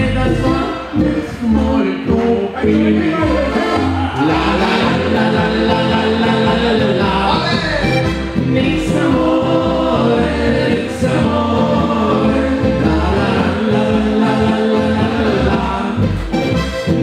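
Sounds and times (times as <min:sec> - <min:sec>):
button accordion playing: 0:00.0 - 0:17.0
double bass playing: 0:00.0 - 0:17.0
voices singing together: 0:00.0 - 0:17.0.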